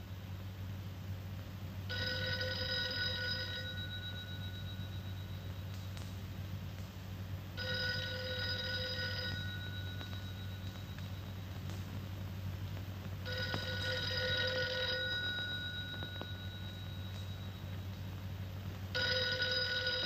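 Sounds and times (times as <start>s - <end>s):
steady low hum: 0.0s - 20.0s
telephone bell ringing: 1.9s - 5.5s, 7.6s - 11.2s, 13.2s - 17.7s, 19.0s - 20.0s.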